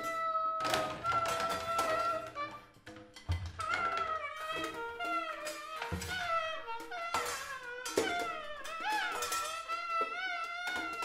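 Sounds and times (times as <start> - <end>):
improvised drum and saxophone music: 0.0 - 11.0.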